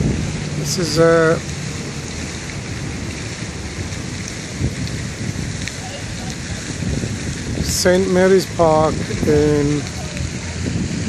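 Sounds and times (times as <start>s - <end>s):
city traffic: 0.0s - 11.0s
wind buffeting microphone: 0.0s - 11.0s.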